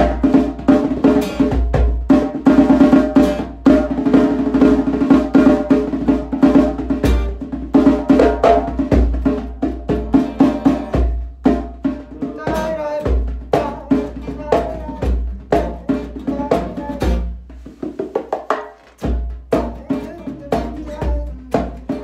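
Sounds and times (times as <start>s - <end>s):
acoustic guitar chords: 0.0s - 17.8s, 19.0s - 22.0s
djembe hand strikes: 0.0s - 22.0s.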